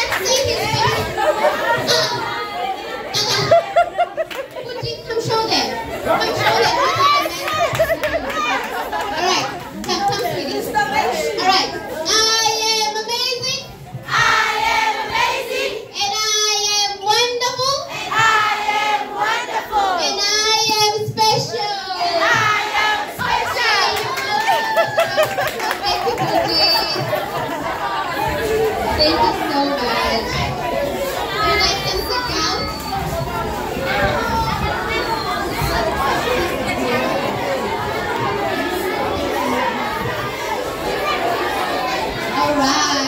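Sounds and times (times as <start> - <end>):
children talking and calling out: 0.0 - 43.0
children singing: 17.9 - 20.7, 26.4 - 43.0.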